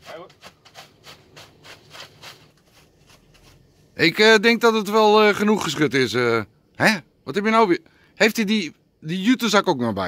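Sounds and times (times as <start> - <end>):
paper rustling in a sack: 0.0 - 3.7.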